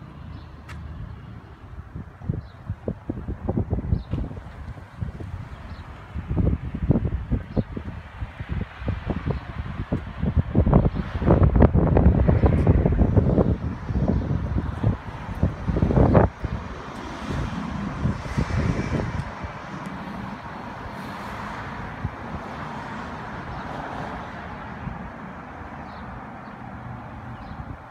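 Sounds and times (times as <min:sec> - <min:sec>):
street traffic: 0:00.0 - 0:27.9
wind buffeting microphone: 0:00.3 - 0:27.9.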